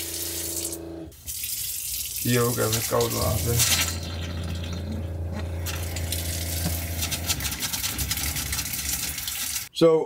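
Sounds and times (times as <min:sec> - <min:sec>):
water pump humming: 0:00.0 - 0:09.7
tap running into sink: 0:02.5 - 0:09.5.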